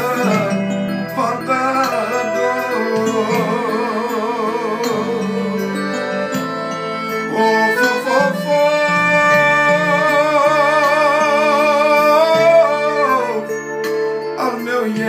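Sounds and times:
man singing: 0.0s - 15.0s
piano accordion: 0.0s - 15.0s.

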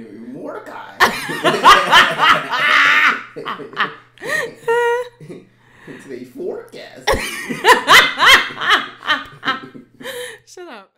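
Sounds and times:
woman laughing loudly: 1.0s - 5.2s, 7.1s - 10.4s.

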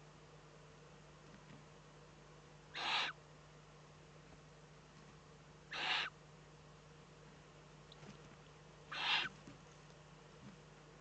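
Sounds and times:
owl chick hissing: 2.7s - 3.2s, 5.7s - 6.2s, 8.9s - 9.4s.

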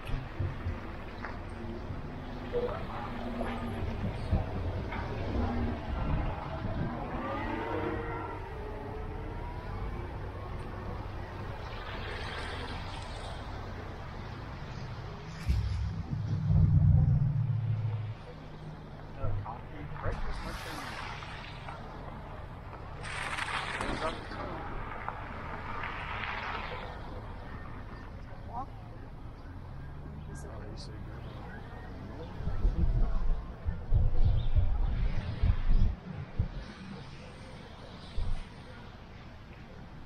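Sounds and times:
car driving on slushy street: 0.0s - 32.6s
loud low rumble: 15.3s - 19.4s.

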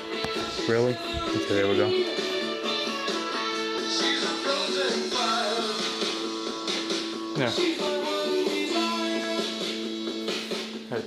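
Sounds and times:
guitar-led music from speaker: 0.0s - 11.0s.

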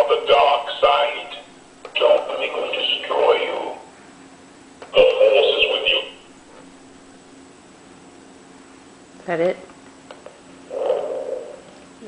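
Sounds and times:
distorted buzzing voice: 0.0s - 3.9s, 4.8s - 6.3s, 10.6s - 11.8s.

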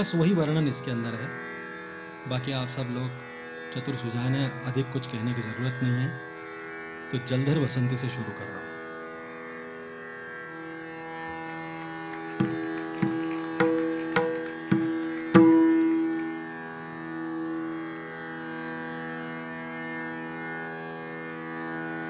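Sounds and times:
tanpura drone: 0.0s - 22.0s
plucked string notes: 11.4s - 17.9s.

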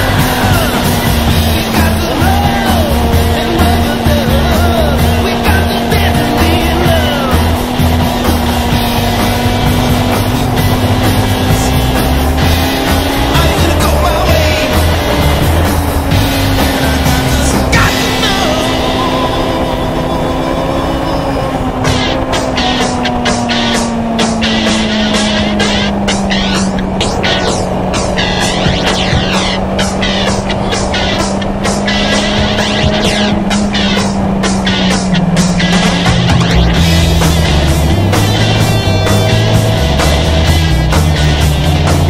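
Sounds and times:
motorcycle engine cruising: 0.0s - 42.0s.

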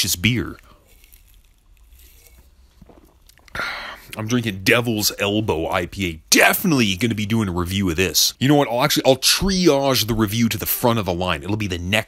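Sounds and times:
mouth and swallowing clicks: 0.9s - 4.2s
breathy exhale: 3.5s - 4.1s.

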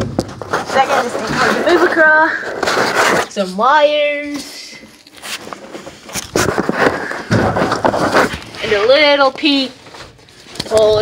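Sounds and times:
phone brushing and scraping: 0.4s - 3.8s, 4.5s - 9.2s.

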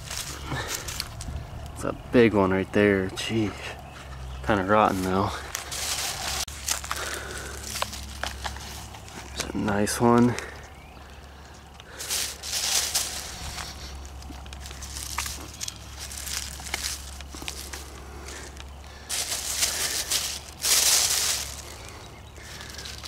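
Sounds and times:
plastic bag crinkling: 0.0s - 1.3s, 5.0s - 9.4s, 11.8s - 23.0s
undergrowth rustling: 0.0s - 23.0s.

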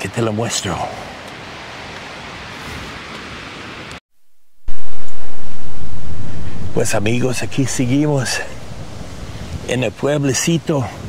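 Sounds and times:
wind blowing across microphone: 4.7s - 11.0s.

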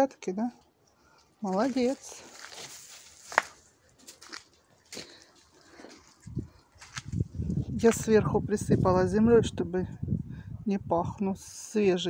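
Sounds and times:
footsteps on garden soil: 1.2s - 8.2s.

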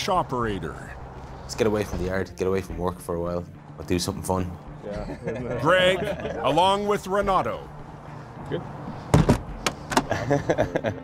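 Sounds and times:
knocks and thumps: 9.1s - 10.1s.

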